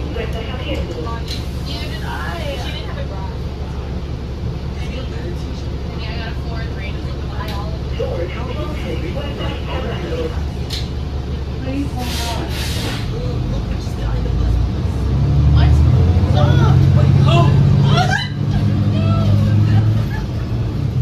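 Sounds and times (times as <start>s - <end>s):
diesel bus idling: 0.0s - 21.0s.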